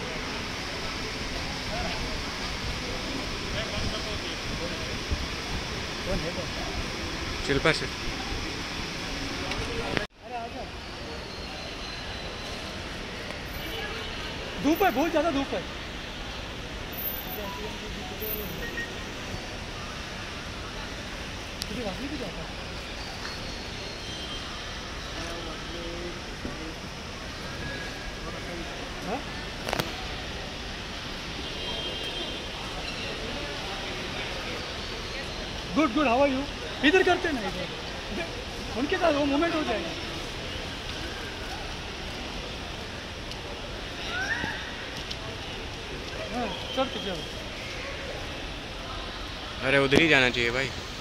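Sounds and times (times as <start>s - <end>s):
traffic: 0.0s - 51.0s
voices: 0.0s - 51.0s
faint scattered talk: 17.2s - 51.0s.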